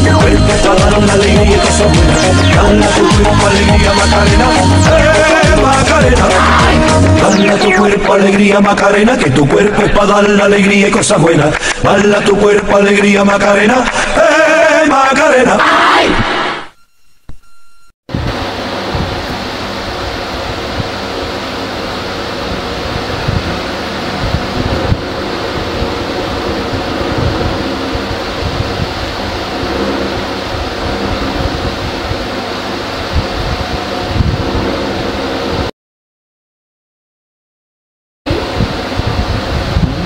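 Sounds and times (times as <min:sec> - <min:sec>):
sung music: 0:00.0 - 0:09.0
steady rushing noise with rumble: 0:18.1 - 0:35.7, 0:38.3 - 0:40.0.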